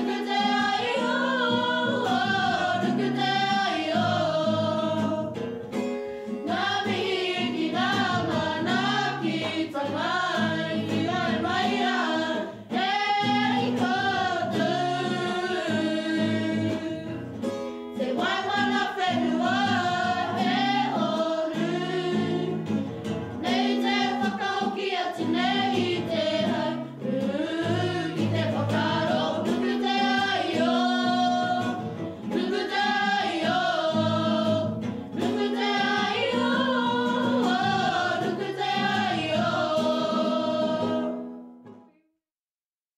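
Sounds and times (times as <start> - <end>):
group of young voices singing: 0.0 - 5.4, 6.4 - 17.2, 18.0 - 41.3
acoustic guitar: 0.0 - 42.1.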